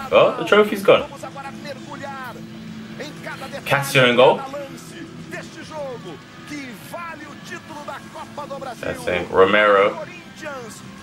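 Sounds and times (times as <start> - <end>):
low hum: 0.0 - 11.0
man speaking on tv: 0.0 - 11.0.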